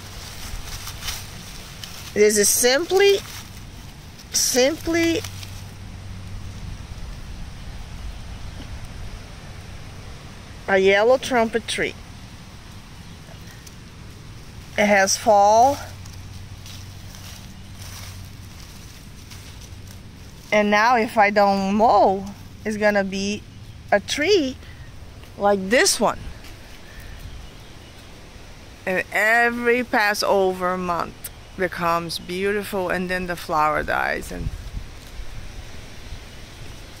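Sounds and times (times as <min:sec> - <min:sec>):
wind buffeting microphone: 0:00.0 - 0:11.1, 0:21.0 - 0:28.8, 0:32.3 - 0:37.0
leaves rustling in wind: 0:00.0 - 0:37.0
low even hum: 0:00.0 - 0:37.0.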